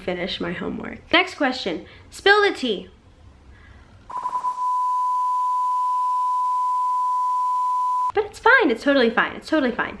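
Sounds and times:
censor bleep tone: 4.1s - 8.2s.

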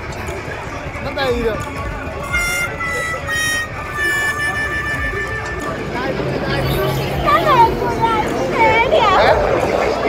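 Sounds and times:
fairground ride noise: 0.0s - 10.0s
held high tone: 2.2s - 8.4s
excited voices: 2.2s - 10.0s.

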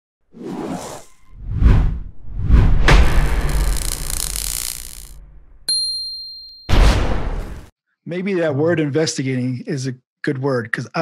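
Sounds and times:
whoosh: 0.4s - 5.7s
sharp metallic ting: 5.7s - 6.9s.

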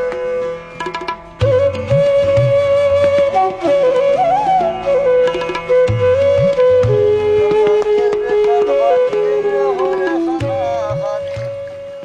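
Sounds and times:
light percussion strokes: 0.0s - 12.0s
flute holding sliding notes: 1.4s - 12.0s.

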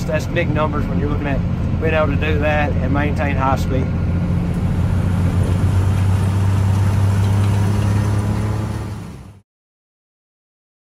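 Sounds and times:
tractor engine drone: 0.0s - 9.4s.

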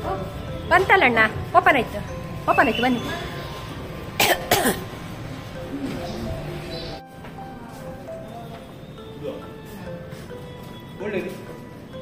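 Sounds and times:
person coughing: 4.2s - 4.9s.

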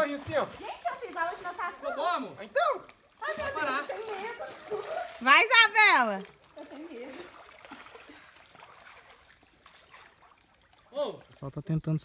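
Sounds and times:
water lapping and paddling: 0.0s - 11.5s.

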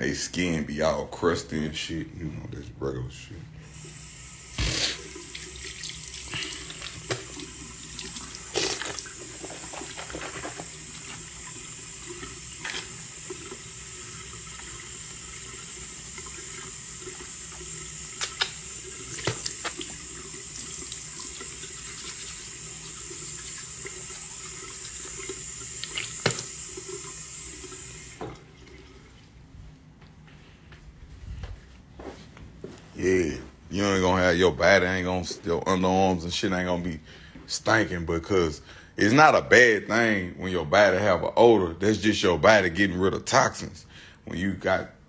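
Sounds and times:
water tap running into sink: 3.7s - 29.1s.

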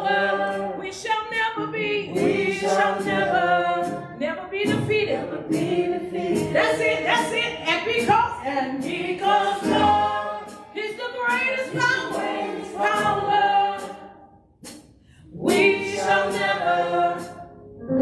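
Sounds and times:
women singing a worship song: 0.0s - 14.2s, 15.2s - 17.4s.

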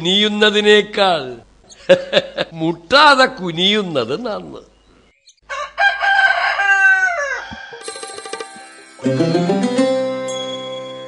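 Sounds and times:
rooster crowing: 5.4s - 7.8s
music: 8.3s - 11.0s.

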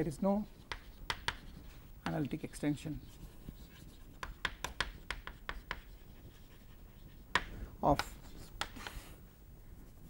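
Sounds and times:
chalk tapping on chalkboard: 0.6s - 9.0s.

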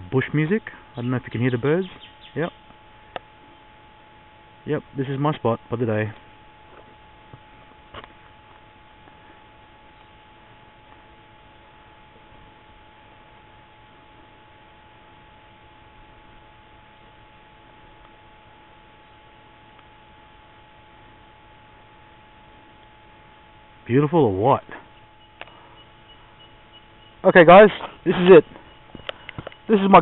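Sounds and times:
thin steady tone: 0.0s - 30.0s.

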